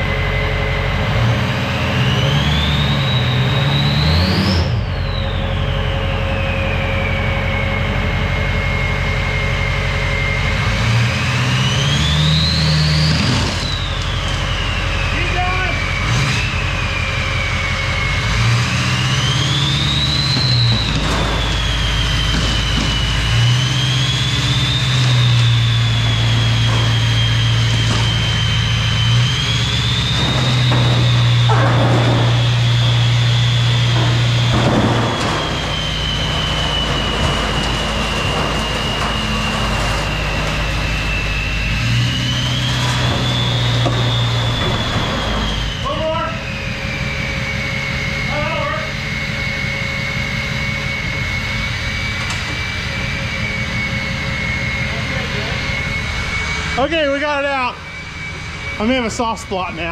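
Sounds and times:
electric cart motor whining: 0:00.0 - 0:59.9
casters crunching on trailer floor: 0:19.9 - 0:46.1.

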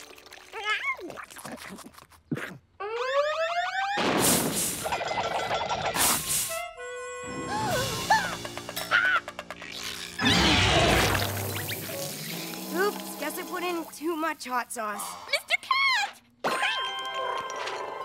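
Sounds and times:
music: 0:06.1 - 0:13.6.

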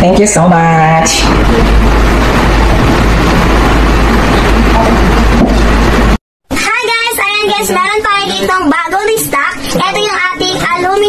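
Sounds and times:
loud steady rumble with hiss: 0:00.0 - 0:11.0.

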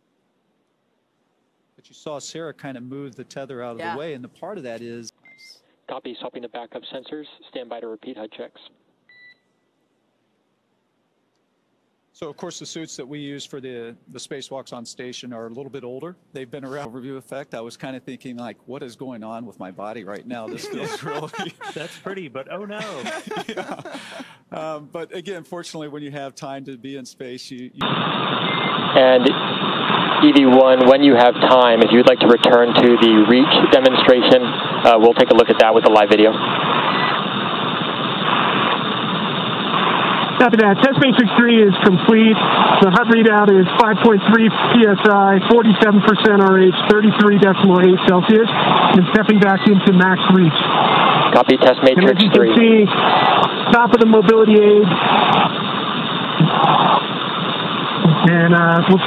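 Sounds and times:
radio static hiss: 0:02.0 - 0:08.7, 0:16.0 - 0:19.1, 0:19.7 - 0:26.0, 0:26.6 - 0:59.0.

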